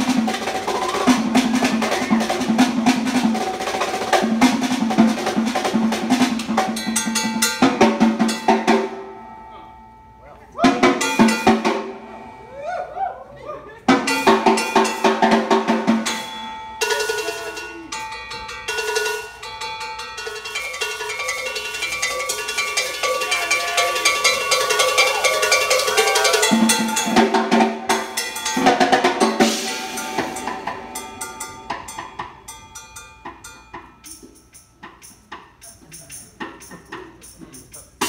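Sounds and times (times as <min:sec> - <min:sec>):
drum kit: 0:00.0 - 0:09.2, 0:10.6 - 0:12.3, 0:13.9 - 0:38.0
congas: 0:00.0 - 0:09.3, 0:10.4 - 0:38.0
jazz fusion band playing: 0:00.0 - 0:09.3, 0:10.5 - 0:12.5, 0:13.8 - 0:38.0.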